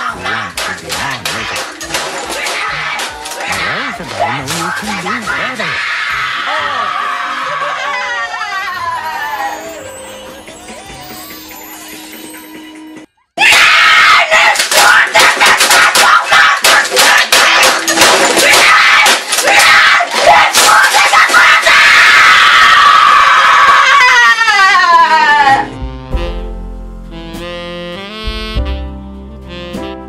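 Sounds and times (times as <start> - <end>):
soft music: 9.1 - 13.1, 25.7 - 30.0
boy screaming in rage: 13.4 - 16.5, 18.4 - 25.7
keyboard smashed against desk: 14.6 - 20.8.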